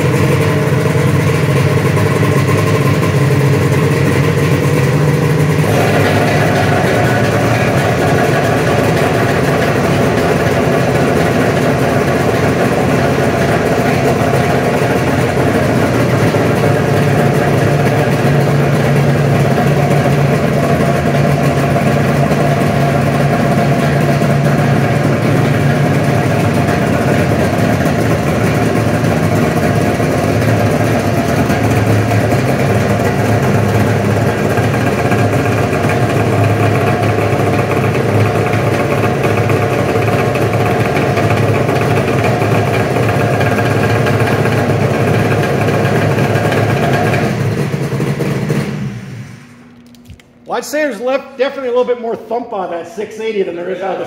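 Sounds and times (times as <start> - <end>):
snowmobile engines idling: 0.0 - 49.6.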